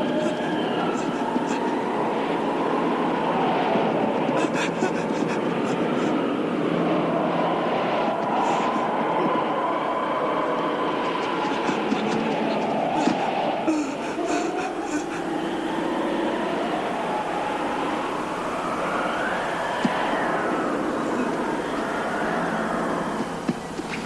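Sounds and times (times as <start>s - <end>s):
faint wavering whistle: 0.0s - 24.0s
rushing wind: 0.0s - 24.0s.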